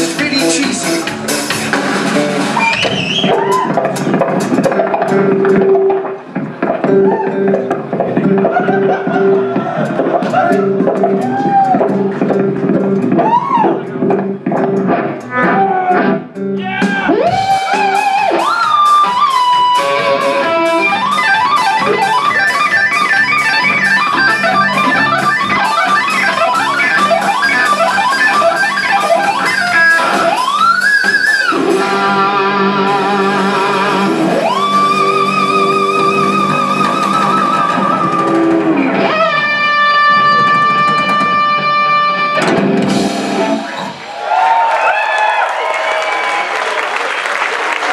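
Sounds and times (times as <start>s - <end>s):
loud electric guitar: 0.0s - 44.2s.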